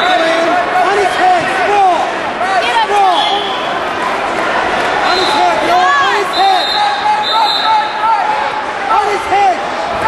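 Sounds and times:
people calling: 2.7 - 3.9, 5.0 - 8.3.

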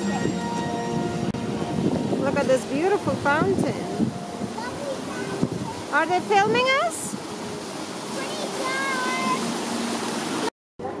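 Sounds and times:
fountain water splashing: 0.0 - 11.0.

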